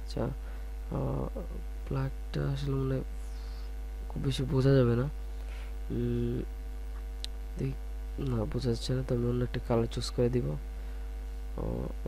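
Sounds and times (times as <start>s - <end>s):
low electrical mains hum: 0.0s - 12.0s
man murmuring: 0.9s - 1.6s, 5.9s - 6.5s, 11.6s - 12.0s.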